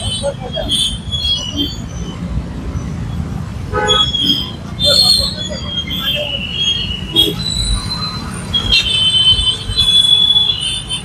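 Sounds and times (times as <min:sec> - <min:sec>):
high-pitched brake squeals: 0:00.0 - 0:11.0
traffic engine rumble: 0:00.0 - 0:11.0.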